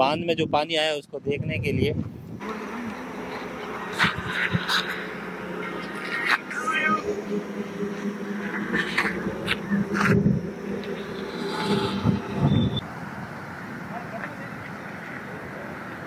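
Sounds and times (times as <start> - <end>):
outdoor background noise: 0.0 - 16.0
indistinct voices: 2.4 - 12.8
low steady hum: 2.4 - 12.8.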